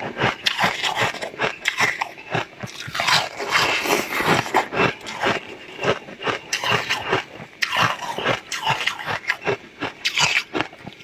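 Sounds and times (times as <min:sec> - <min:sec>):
crunching ice: 0:00.0 - 0:11.0.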